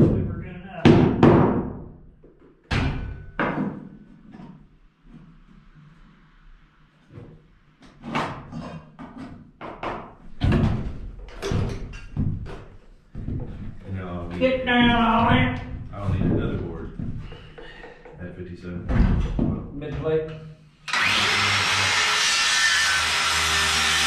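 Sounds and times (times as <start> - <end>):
hammer knocks on wood framing: 0.8 - 1.9.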